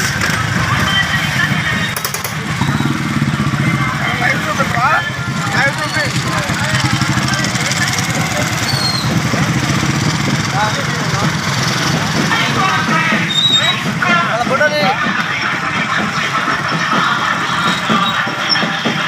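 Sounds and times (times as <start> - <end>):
small motorcycles engine drone: 0.0 - 13.1
voices calling out: 0.0 - 19.0.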